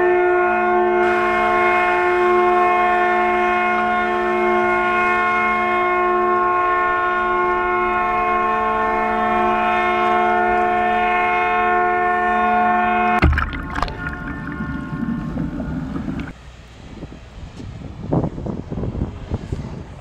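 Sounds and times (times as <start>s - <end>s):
ship's horn blast: 0.0s - 16.4s.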